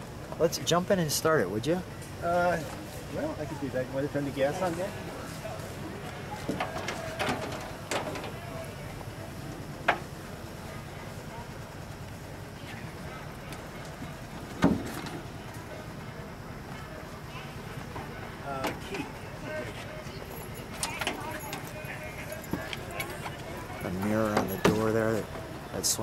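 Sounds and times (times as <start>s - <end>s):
low background hum: 0.0s - 26.0s
voices: 0.0s - 26.0s.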